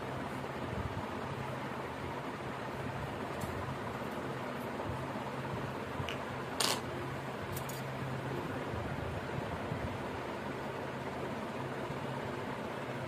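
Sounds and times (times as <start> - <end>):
steady low fan hum: 0.0 - 13.0
coin clicking on tiled floor: 6.6 - 6.8.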